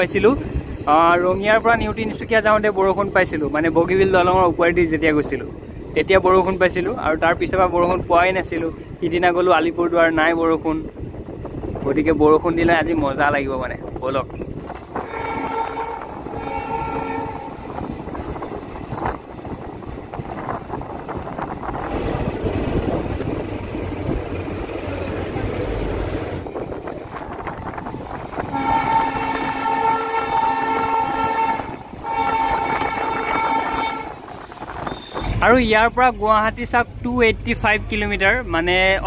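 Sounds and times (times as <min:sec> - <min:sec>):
train rumbling: 0:00.0 - 0:39.0
train horn blasts: 0:14.9 - 0:17.8, 0:28.3 - 0:35.4.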